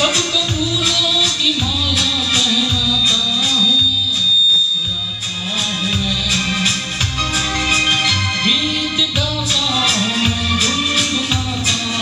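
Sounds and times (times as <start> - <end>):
karaoke backing track: 0.0 - 12.0
man singing into microphone: 0.0 - 12.0.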